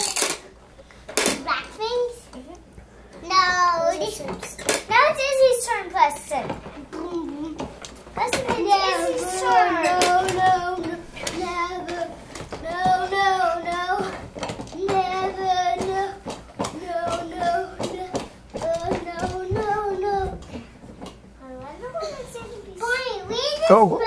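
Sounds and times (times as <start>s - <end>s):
child singing: 8.2s - 20.6s.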